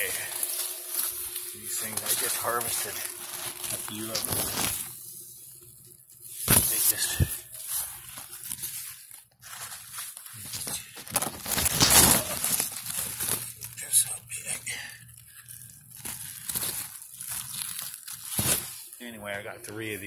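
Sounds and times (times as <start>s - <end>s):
leaves rustling and crackling: 0.0s - 5.4s, 6.2s - 20.0s.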